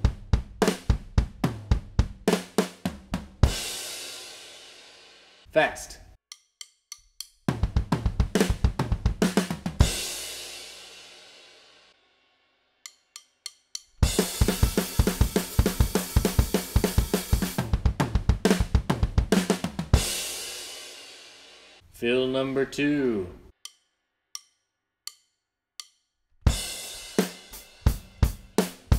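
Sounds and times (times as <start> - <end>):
fast drum kit beat: 0.0 - 5.0, 7.5 - 11.6, 14.0 - 21.7, 26.5 - 28.9.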